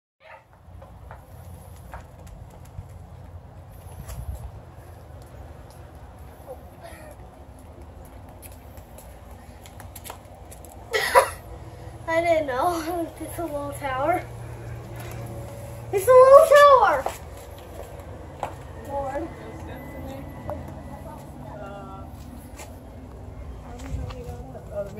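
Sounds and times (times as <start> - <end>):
low steady hum: 1.1 - 24.9
child's high-pitched call: 16.0 - 17.2.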